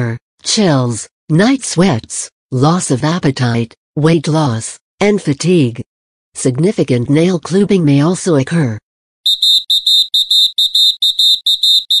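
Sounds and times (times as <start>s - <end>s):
rapid electronic beeping: 9.3s - 12.0s.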